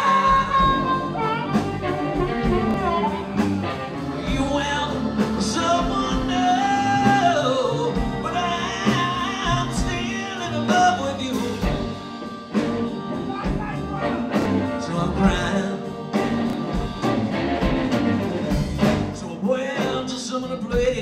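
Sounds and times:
electric guitar lead: 0:00.0 - 0:19.2
electric bass: 0:00.0 - 0:20.0
drums: 0:00.0 - 0:21.0
live blues band: 0:00.0 - 0:21.0.

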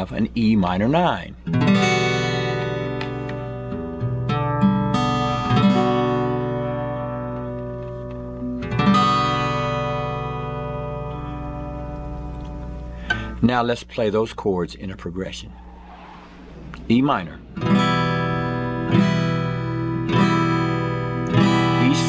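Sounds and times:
acoustic guitar chord ringing: 0:01.5 - 0:07.4, 0:08.6 - 0:13.3.

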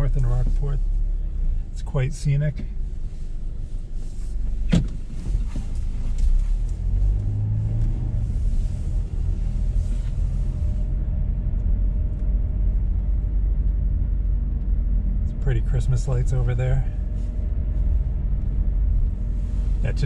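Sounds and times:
car engine: 0:00.0 - 0:20.0
road rumble: 0:00.0 - 0:20.0
road hiss: 0:19.2 - 0:20.0.

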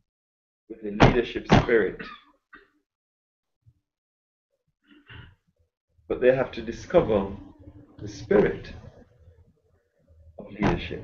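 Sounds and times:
man clearing throat: 0:02.0 - 0:02.3.

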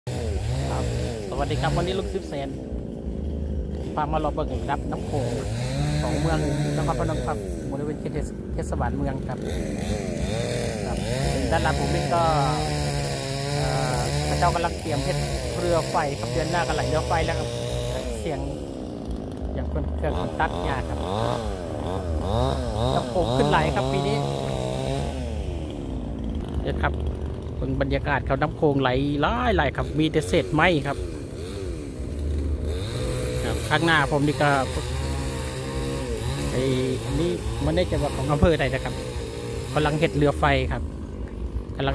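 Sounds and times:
small engine humming: 0:00.1 - 0:41.9
man speaking: 0:00.6 - 0:02.6, 0:04.0 - 0:09.6, 0:10.8 - 0:12.8, 0:13.5 - 0:18.6, 0:19.5 - 0:21.2, 0:22.8 - 0:24.6, 0:27.6 - 0:31.0, 0:33.4 - 0:34.9, 0:36.5 - 0:39.0, 0:39.7 - 0:40.8
man talking: 0:00.6 - 0:02.6, 0:03.9 - 0:09.6, 0:10.8 - 0:18.6, 0:19.5 - 0:21.2, 0:22.8 - 0:24.6, 0:26.6 - 0:31.0, 0:33.4 - 0:35.0, 0:36.4 - 0:39.0, 0:39.7 - 0:40.8.

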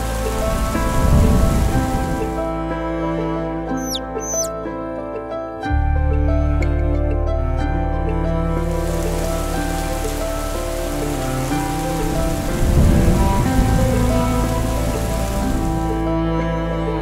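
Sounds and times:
low rumble: 0:00.0 - 0:02.7
steady rain-like hiss: 0:00.0 - 0:02.9, 0:08.4 - 0:16.1
background music: 0:00.0 - 0:17.0.

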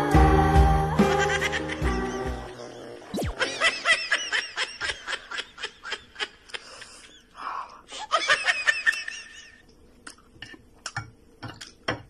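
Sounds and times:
high-pitched giggling: 0:01.1 - 0:06.6.

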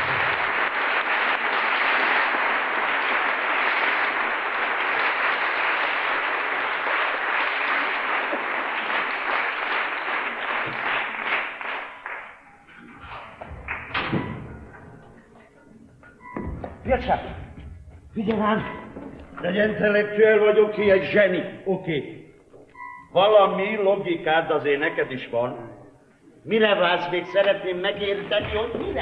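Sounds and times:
audience applauding: 0:00.0 - 0:14.0.

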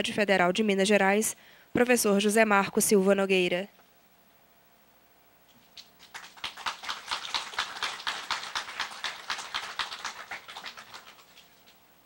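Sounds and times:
audience applauding: 0:06.0 - 0:11.8.

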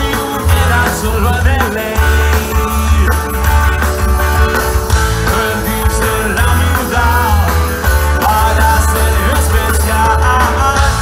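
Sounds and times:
live rock band playing: 0:00.0 - 0:11.0
person singing: 0:00.0 - 0:11.0.

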